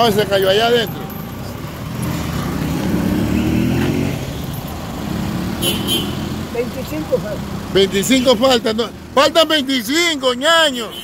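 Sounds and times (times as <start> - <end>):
car engine speeding up: 1.8 - 5.6.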